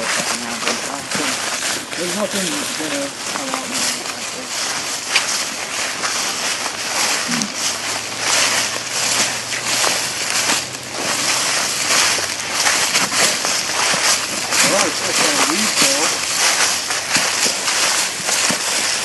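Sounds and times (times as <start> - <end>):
footsteps crunching through dry leaves: 0.0 - 19.0.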